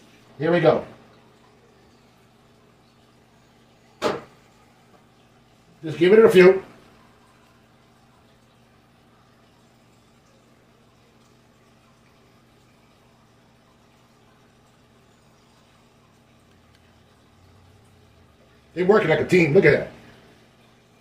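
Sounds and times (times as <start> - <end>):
aquarium hum: 0.0 - 21.0
water trickling: 0.0 - 21.0.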